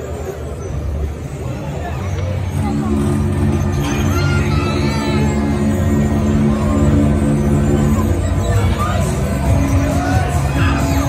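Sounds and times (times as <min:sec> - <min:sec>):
gondolas sweeping past: 0:00.0 - 0:11.0
ride machinery rumbling: 0:00.0 - 0:11.0.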